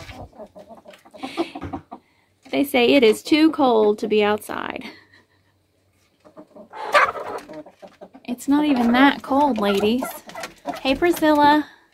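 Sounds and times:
chickens clucking quietly: 0.0s - 2.4s, 5.3s - 11.4s.

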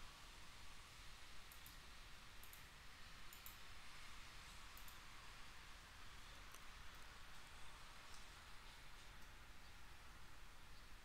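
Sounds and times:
room hiss: 0.0s - 11.0s
faint computer mouse clicks: 1.5s - 1.8s, 2.4s - 2.7s, 3.3s - 3.6s, 4.7s - 5.0s.

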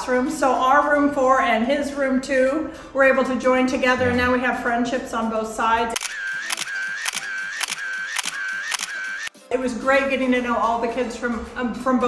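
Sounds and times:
camera shutter clicking: 6.0s - 9.3s.

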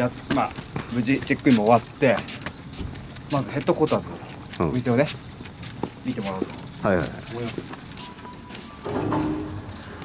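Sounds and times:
light jingling: 0.0s - 9.8s.

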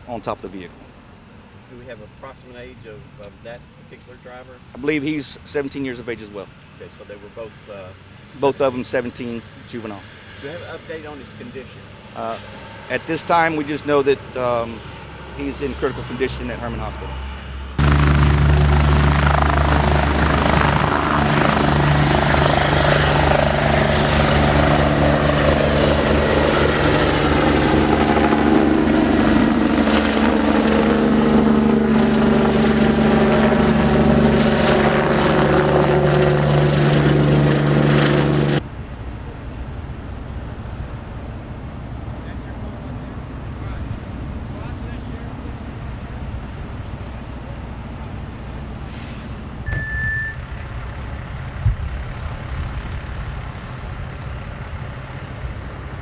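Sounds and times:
outdoor background: 0.0s - 56.0s
helicopter flying away: 7.9s - 48.8s, 50.4s - 56.0s.

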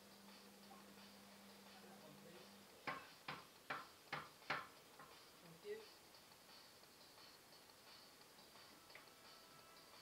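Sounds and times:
wooden mallet tapping on plank: 2.8s - 5.2s.

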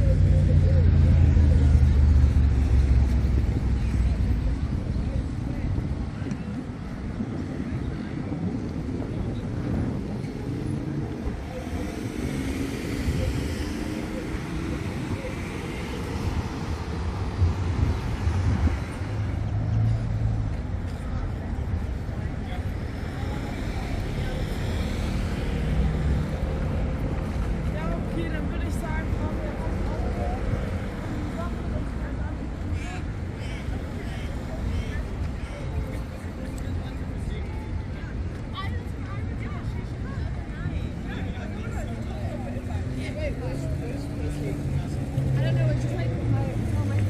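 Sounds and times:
cars passing: 0.0s - 47.0s.

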